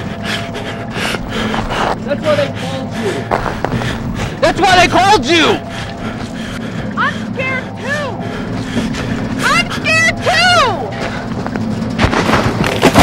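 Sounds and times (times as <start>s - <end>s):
steady low drone: 0.0s - 13.0s.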